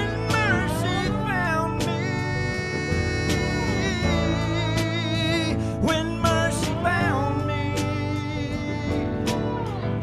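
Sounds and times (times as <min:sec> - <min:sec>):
electric guitar lead line: 0:00.0 - 0:10.0
live rock band playing: 0:00.0 - 0:10.0.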